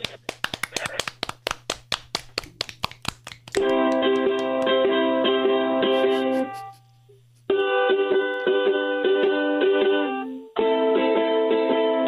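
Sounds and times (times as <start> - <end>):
people clapping: 0.0 - 4.8
ukulele playing: 3.6 - 6.7, 7.5 - 12.0.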